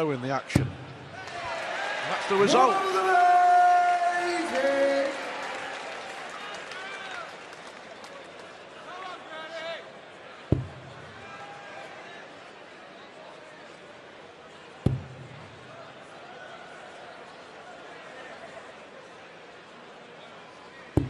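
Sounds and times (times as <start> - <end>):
crowd cheering: 0.0 - 13.2
man announcing: 2.0 - 5.2
dart striking a board: 14.9 - 15.2.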